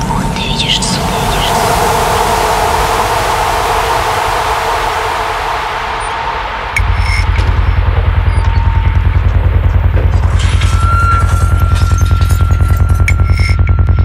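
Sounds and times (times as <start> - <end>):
white-noise sweep with held tones: 0.0 - 14.0
fast-pulsing kick and bassline: 6.8 - 14.0.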